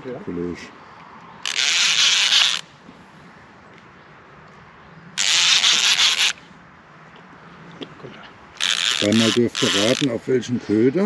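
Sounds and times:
fishing reel rasping: 1.4s - 2.7s, 5.2s - 6.4s, 8.6s - 10.1s.

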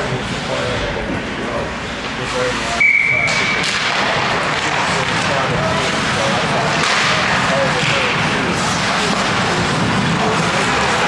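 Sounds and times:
ice hockey rink din: 0.0s - 11.0s.

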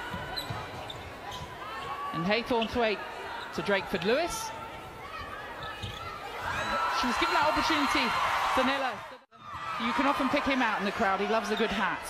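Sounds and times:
players' feet on court floor: 0.0s - 2.8s
faint crowd noise: 0.0s - 12.0s.

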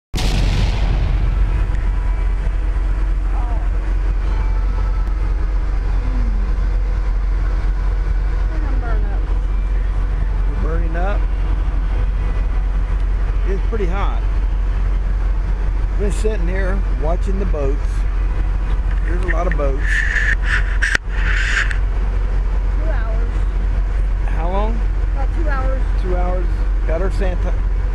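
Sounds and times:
faint hum: 0.2s - 27.9s
loud low rumble: 0.2s - 27.9s
faint voices talking: 8.4s - 15.1s, 18.6s - 21.8s.

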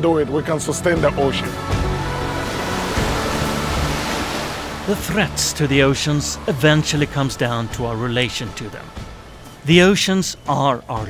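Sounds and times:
background music low notes: 0.0s - 11.0s
waves breaking on rocks: 2.0s - 9.0s.

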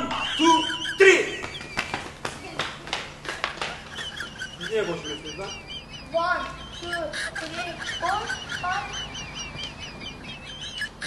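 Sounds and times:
rapid high-pitched bird chirping: 3.9s - 11.0s.

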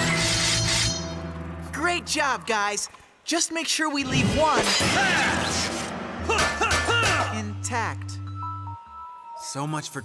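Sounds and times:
background music: 0.0s - 2.9s, 4.0s - 10.0s.

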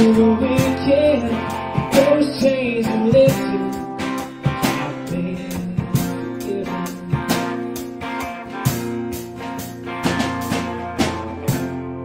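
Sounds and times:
live band with guitars: 0.0s - 12.0s.

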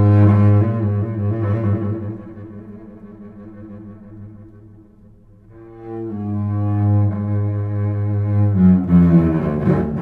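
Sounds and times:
cello and wind ensemble: 0.0s - 10.0s.

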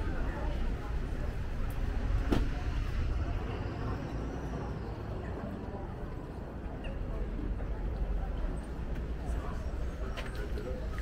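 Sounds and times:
low rumble of vehicles: 0.0s - 11.0s.

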